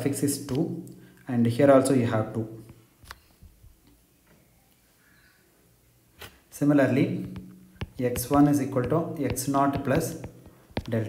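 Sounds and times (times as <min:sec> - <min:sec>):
stylus tapping on glass screen: 0:07.1 - 0:11.0.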